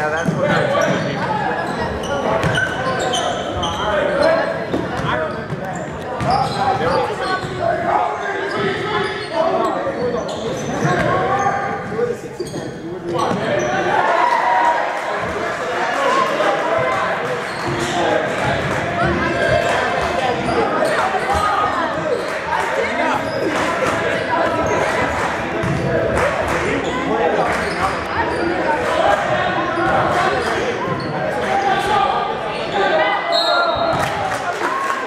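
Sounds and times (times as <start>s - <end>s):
echoing voices: 0.0s - 35.0s.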